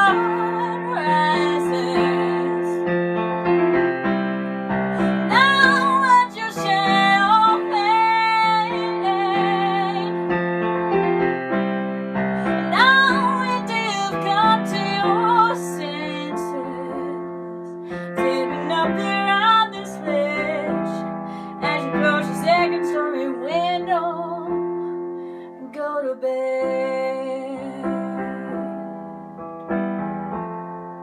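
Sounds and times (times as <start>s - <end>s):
woman singing with vibrato: 0.0s - 2.9s, 5.0s - 10.3s, 12.4s - 24.5s, 25.6s - 28.7s
keyboard piano chords: 0.0s - 31.0s.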